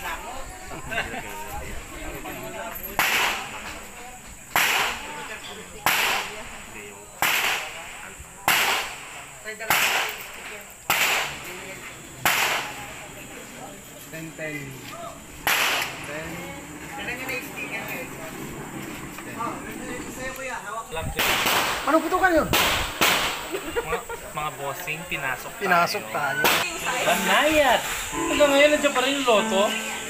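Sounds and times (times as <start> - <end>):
gunshots: 4.5 - 5.0, 5.8 - 6.4, 7.2 - 7.8, 8.5 - 10.3, 10.9 - 11.4, 12.2 - 12.8, 15.4 - 16.0, 21.2 - 21.9, 22.5 - 23.4.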